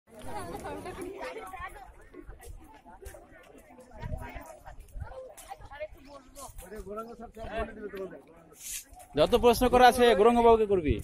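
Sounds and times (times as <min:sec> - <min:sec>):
overlapping chatter: 0:00.1 - 0:11.0.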